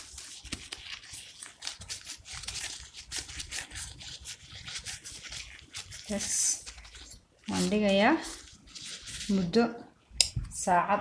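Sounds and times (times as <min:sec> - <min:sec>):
hands kneading dough: 0:00.0 - 0:10.7.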